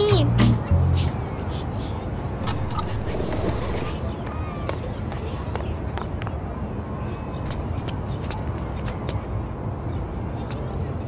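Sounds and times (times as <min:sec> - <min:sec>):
children's voices murmuring: 0:01.0 - 0:06.0.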